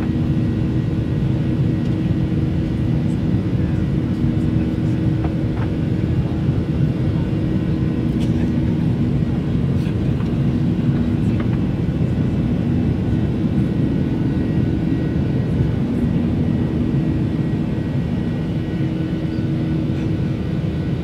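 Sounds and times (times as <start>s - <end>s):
jet cabin engine rumble: 0.0s - 21.0s.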